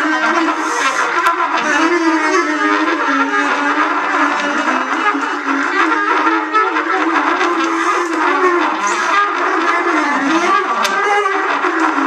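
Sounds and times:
free jazz ensemble playing: 0.0s - 12.0s.

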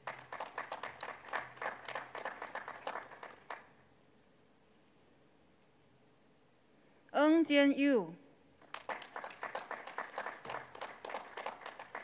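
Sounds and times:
sparse hand clapping: 0.0s - 3.7s, 8.6s - 12.0s.

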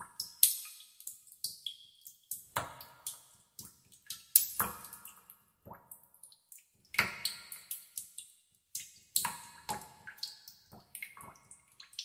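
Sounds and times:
water dripping in a cave: 0.0s - 12.0s.

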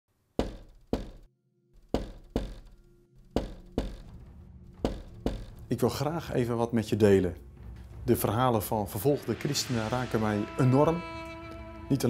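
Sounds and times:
knuckles knocking on a door: 0.4s - 1.3s, 1.9s - 4.2s, 4.8s - 5.6s.

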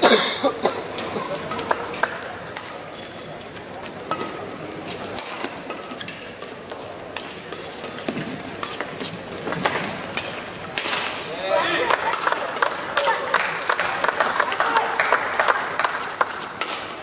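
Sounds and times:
rackets striking shuttlecock: 3.8s - 11.2s
voices from the stands: 10.7s - 17.0s.

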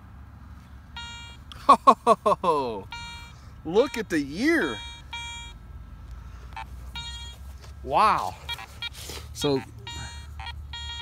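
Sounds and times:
metal detector beeps: 1.0s - 1.4s, 2.9s - 5.6s, 6.5s - 7.4s, 8.2s - 11.0s.

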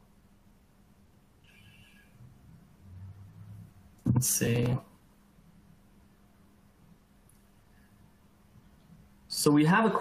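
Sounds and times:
faint high-pitched tone: 1.4s - 4.2s.

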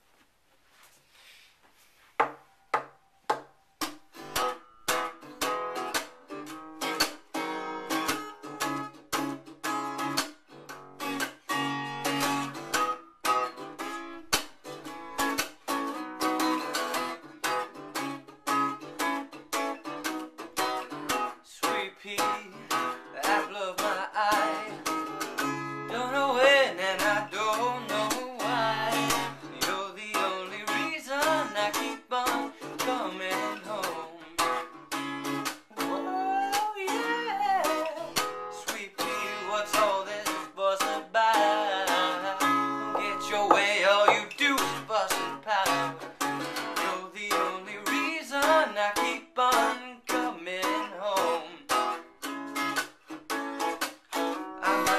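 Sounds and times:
acoustic guitar strumming: 2.2s - 54.9s
man singing: 21.4s - 25.1s, 25.9s - 34.7s, 35.7s - 51.8s, 54.6s - 54.9s.

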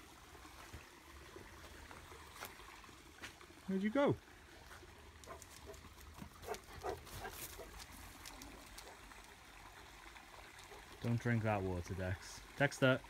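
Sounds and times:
stream trickling: 0.0s - 13.0s.

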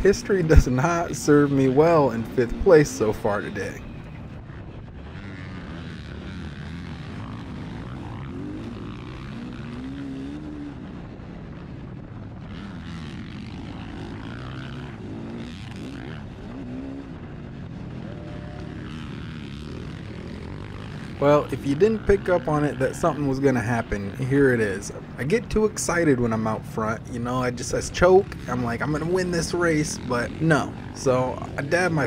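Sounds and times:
motocross bike engine revving: 0.0s - 4.3s, 5.0s - 32.0s.

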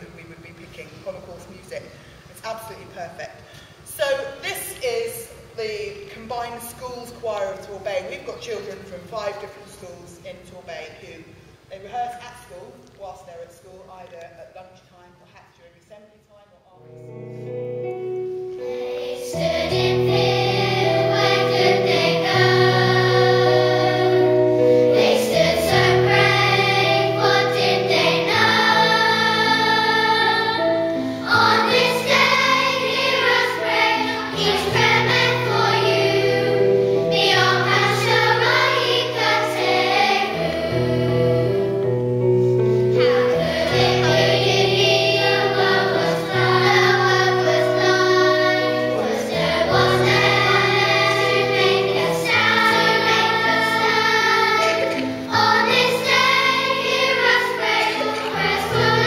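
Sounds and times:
low accompanying notes: 16.8s - 59.0s
children's choir singing: 18.4s - 42.0s, 42.7s - 59.0s.

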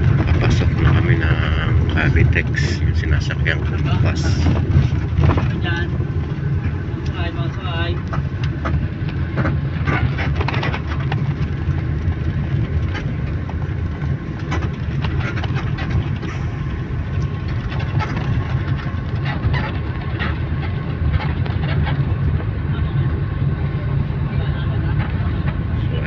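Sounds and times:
bus engine rumble: 0.0s - 26.0s.

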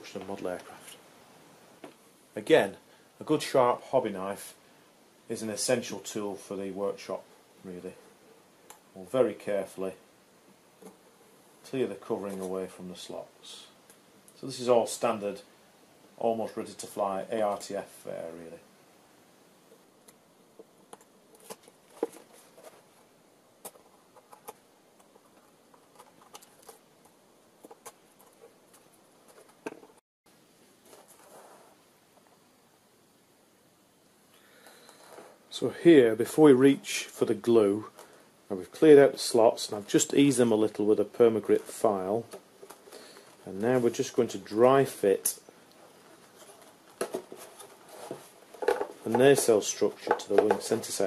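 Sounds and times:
wooden clicks and knocks: 48.6s - 49.5s.

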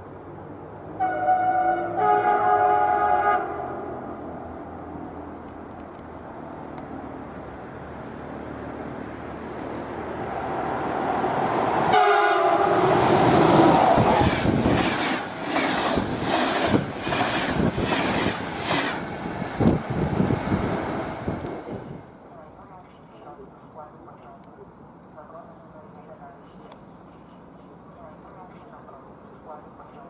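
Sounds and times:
train passing at speed: 0.0s - 22.4s
train horn blast: 1.0s - 4.1s, 11.9s - 13.2s.

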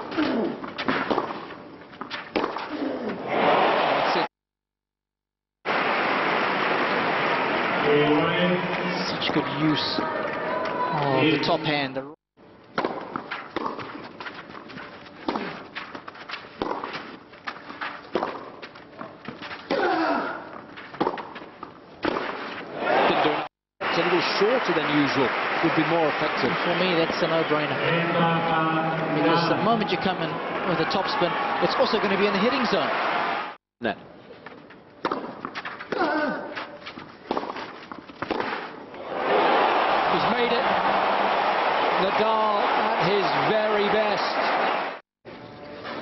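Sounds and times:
racket hitting tennis ball: 0.2s - 2.8s, 12.8s - 18.7s, 20.8s - 22.7s, 35.0s - 38.8s
quiet stadium crowd: 6.0s - 12.1s, 22.7s - 34.6s, 38.9s - 46.0s.

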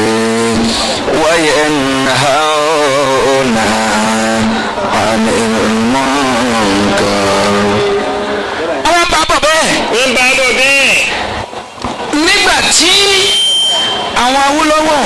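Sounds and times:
man chanting into microphone: 0.0s - 8.2s.

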